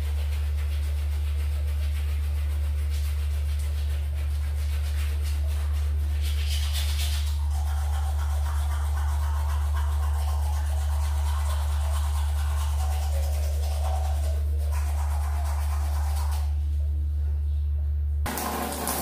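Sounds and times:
toothbrush scrubbing teeth: 0.0 - 16.6
steady low hum: 0.0 - 18.3.

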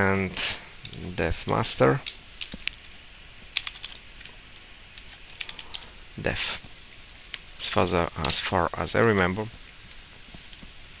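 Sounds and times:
computer keyboard typing: 3.6 - 4.0, 5.0 - 5.9.

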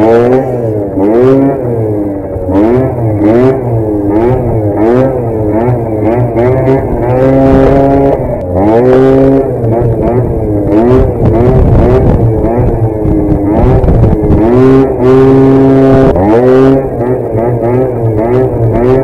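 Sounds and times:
scooter engine revving: 0.0 - 19.0.

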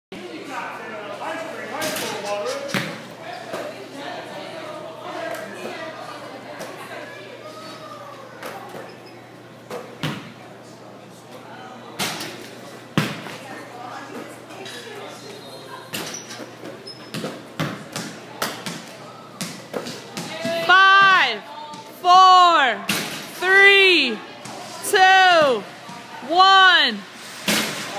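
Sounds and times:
crowd chatter in large hall: 0.1 - 27.9
basketballs bouncing: 17.1 - 21.9.

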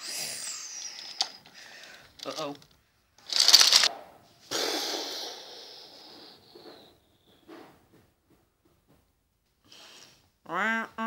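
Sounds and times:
wooden toy train pieces clattering: 0.7 - 3.9.

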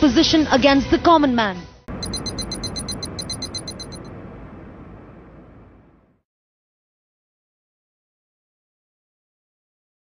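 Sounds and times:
rapid high ticking: 1.9 - 4.1.

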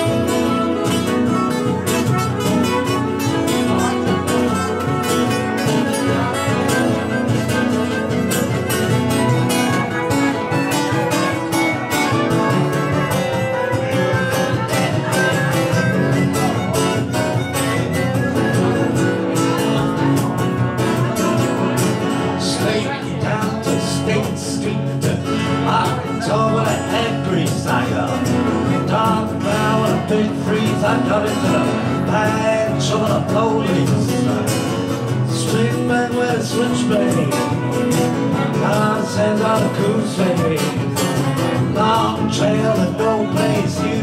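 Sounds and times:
trumpet playing: 0.0 - 22.3
acoustic guitars strumming: 0.0 - 44.0.

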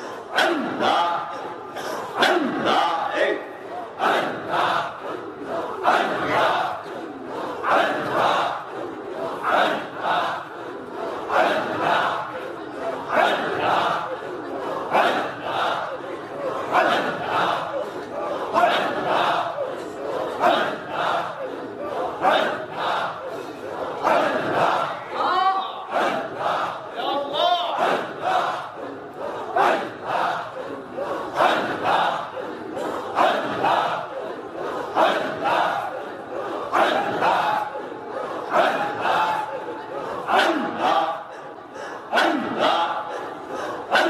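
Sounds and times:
men chanting together: 0.0 - 44.0.

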